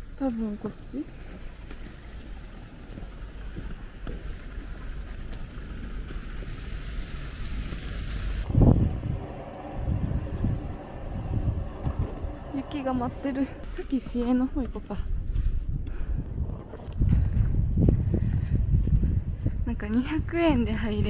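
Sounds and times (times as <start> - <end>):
wind buffeting microphone: 8.2 - 21.0.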